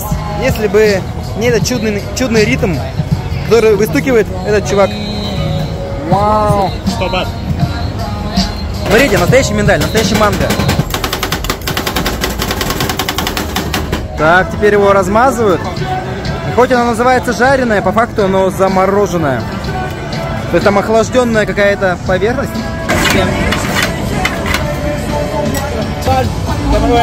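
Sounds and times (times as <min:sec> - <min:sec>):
voices: 0:00.0 - 0:10.9, 0:14.1 - 0:27.0
background music: 0:00.0 - 0:27.0.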